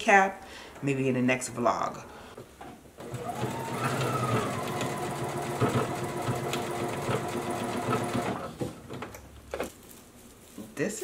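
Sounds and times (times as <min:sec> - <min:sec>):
sewing machine running: 0:03.0 - 0:08.6.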